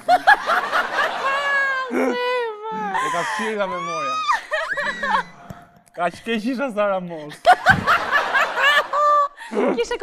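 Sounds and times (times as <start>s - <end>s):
woman laughing: 0.0s - 5.4s.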